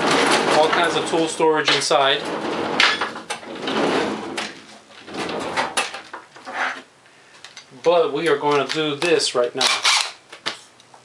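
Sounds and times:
sliding scrapes: 0.0s - 6.9s.

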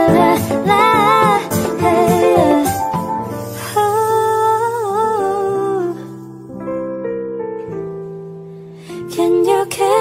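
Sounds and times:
soft acoustic accompaniment: 0.0s - 10.0s.

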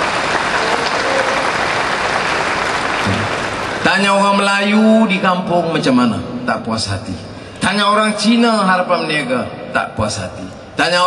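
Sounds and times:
large audience applauding: 0.0s - 4.3s.

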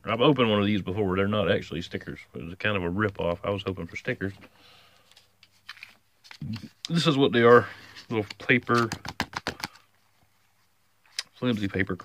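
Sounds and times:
sharp paper clicks: 8.2s - 9.8s.

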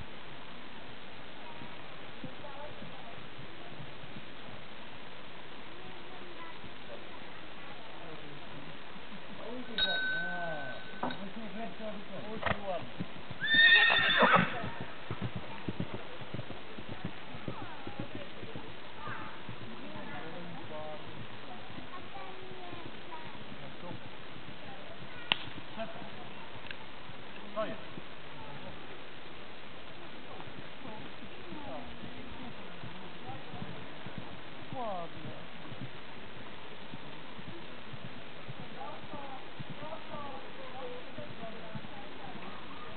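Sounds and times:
voices: 1.2s - 42.9s
hoofbeats on grass: 7.8s - 42.9s
horse whinnying: 13.4s - 14.8s.

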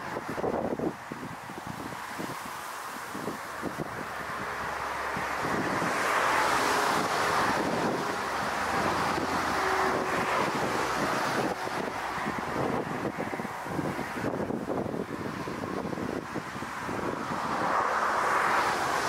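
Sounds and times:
jet engines rushing: 0.0s - 19.0s
wind buffeting microphone: 0.0s - 19.0s.

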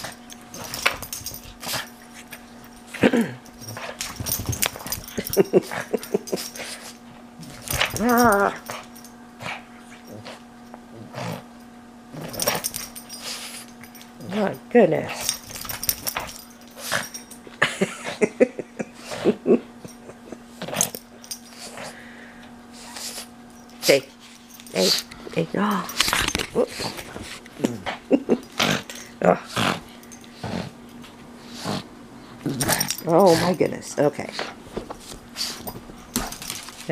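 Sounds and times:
faint steady hum: 0.0s - 36.9s
dog grunting and snorting: 2.9s - 3.9s, 9.4s - 11.5s, 25.9s - 30.8s.

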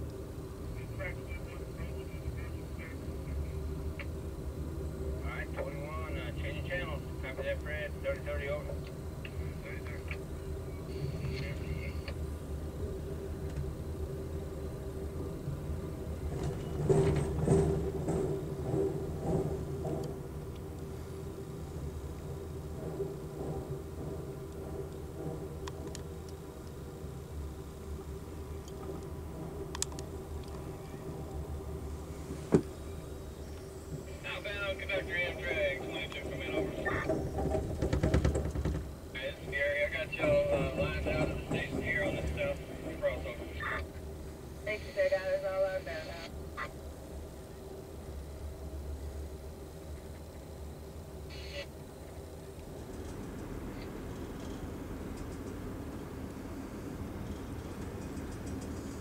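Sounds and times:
train rolling low rumble: 0.0s - 59.0s
train wheels clattering: 15.7s - 44.8s, 52.6s - 59.0s
wheels clattering over rail switches: 34.5s - 43.9s.

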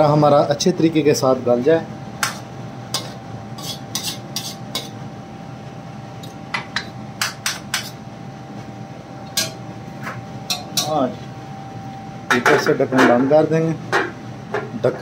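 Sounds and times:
faint steady whine: 0.0s - 15.0s
ladle clinking and scraping pan: 3.0s - 4.9s.

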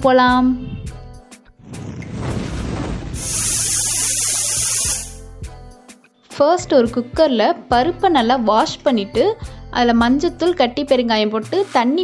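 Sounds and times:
rising whoosh: 1.6s - 3.7s
bright hissing shimmer: 3.2s - 5.2s.

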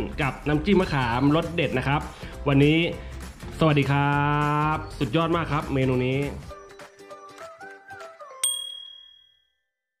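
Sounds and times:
background music tune: 0.0s - 8.9s
bright bell ding: 8.4s - 9.5s.

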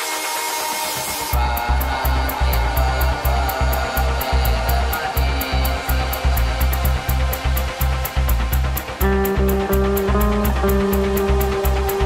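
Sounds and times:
downtempo electronic music: 0.0s - 12.0s.

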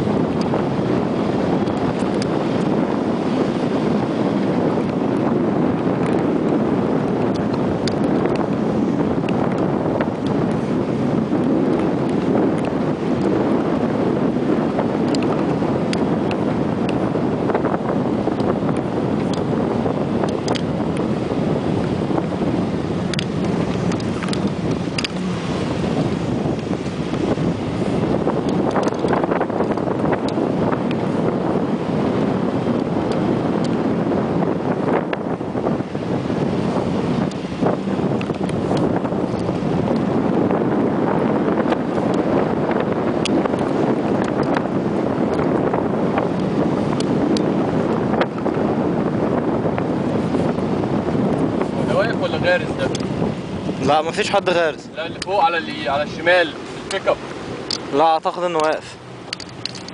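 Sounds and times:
vehicle engine and tyre noise: 0.0s - 59.9s
wind buffeting microphone: 0.0s - 59.9s.

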